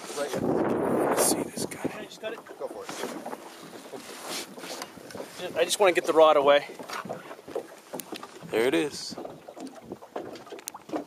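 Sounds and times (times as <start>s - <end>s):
wind on microphone: 0.0s - 2.4s
knocks and shuffling on boat deck: 0.0s - 11.0s.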